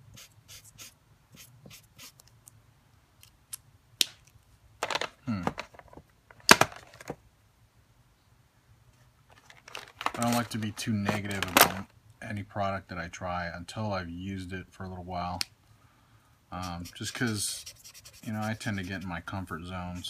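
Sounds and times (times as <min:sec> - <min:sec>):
marker scratching across paper: 0:00.0 - 0:02.3, 0:16.6 - 0:20.0.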